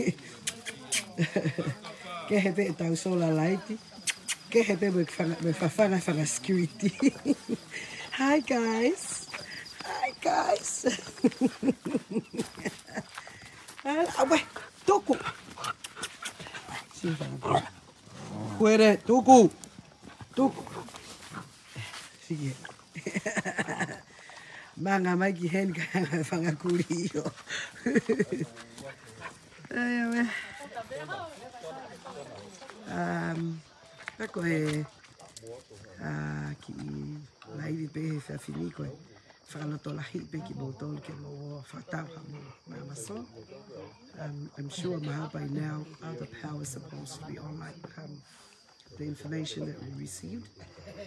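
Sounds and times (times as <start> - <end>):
night insects chirring: 0.0 - 51.0
woman talking: 2.3 - 13.1, 13.8 - 15.3, 24.8 - 28.1, 29.7 - 32.2, 44.2 - 48.1.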